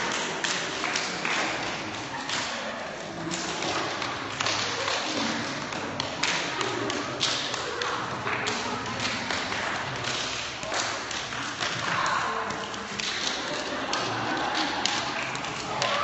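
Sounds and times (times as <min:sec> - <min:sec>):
murmuring voices: 0:00.0 - 0:16.0
people clapping hands: 0:00.0 - 0:16.0.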